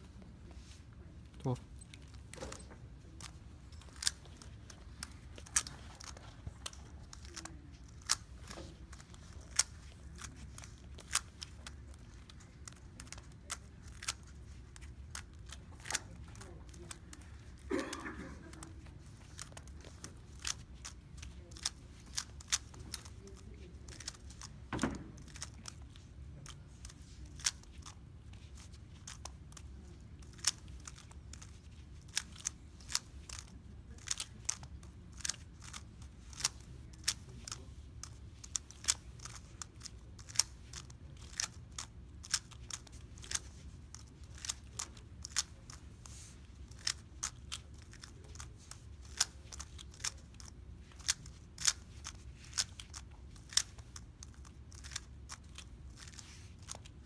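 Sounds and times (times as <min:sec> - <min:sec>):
low steady hum: 0:00.0 - 0:57.0
plastic puzzle cube clicking: 0:03.2 - 0:17.5, 0:18.8 - 0:56.9.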